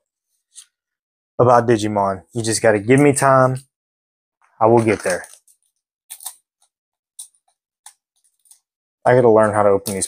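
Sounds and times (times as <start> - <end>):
foil wrapper crinkling: 4.7 - 6.4.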